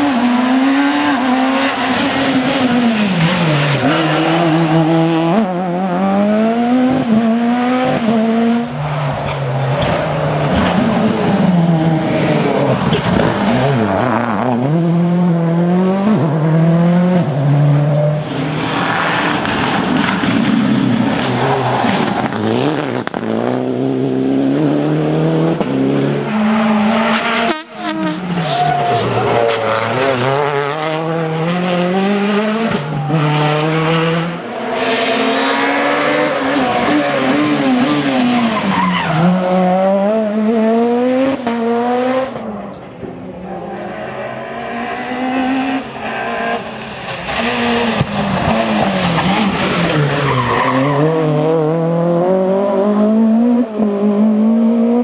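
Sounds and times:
rally car engines revving: 0.0s - 55.0s.

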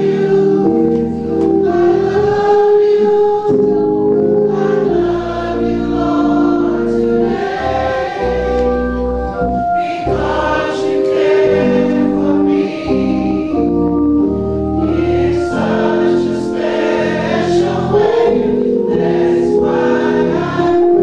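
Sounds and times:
church choir singing: 0.0s - 21.0s
organ accompaniment: 0.0s - 21.0s.

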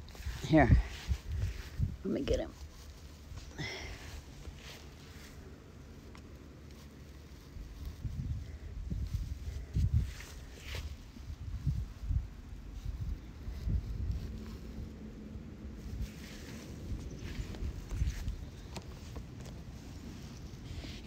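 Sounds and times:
wind buffeting microphone: 0.0s - 2.4s, 7.6s - 19.2s
light rustle: 0.0s - 21.0s.

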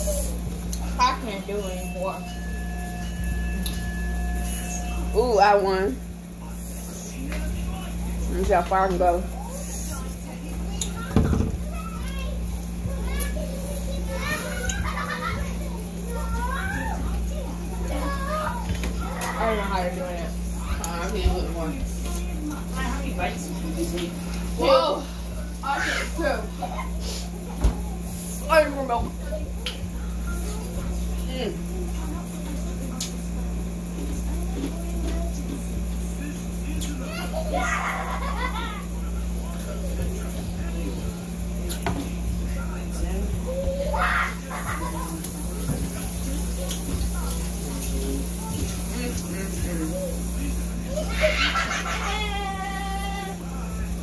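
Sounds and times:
children chattering: 0.0s - 8.3s, 9.0s - 54.0s
faint voices: 0.0s - 54.0s
steady low hum: 0.0s - 54.0s.

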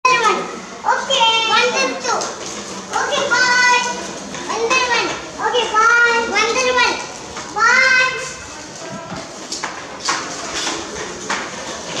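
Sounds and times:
children's high-pitched calls: 0.0s - 8.5s.

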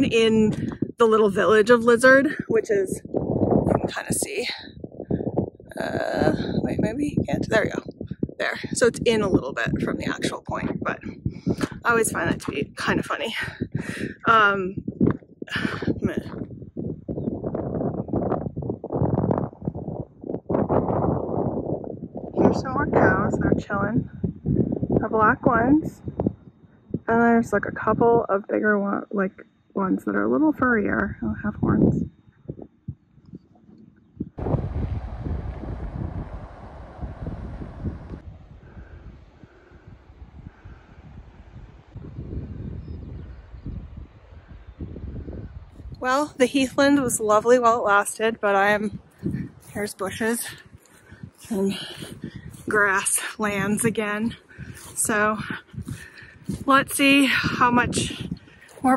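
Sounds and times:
wind buffeting microphone: 0.0s - 58.9s
person speaking: 51.4s - 55.6s.

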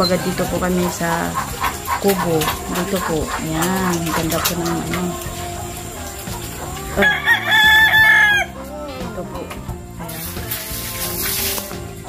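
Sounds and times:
rooster crowing: 4.4s - 9.0s.

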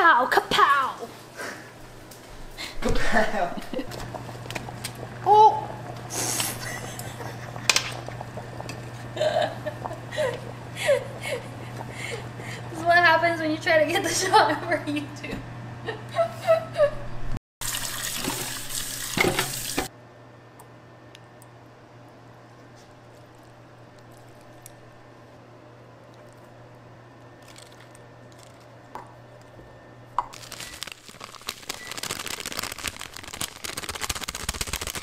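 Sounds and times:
low steady hum: 1.6s - 17.2s
tap water running into sink: 17.6s - 19.9s.

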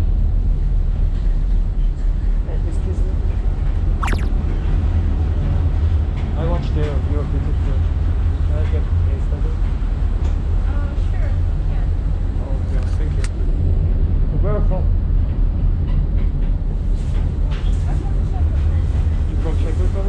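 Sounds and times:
sharp click: 4.0s - 4.3s.

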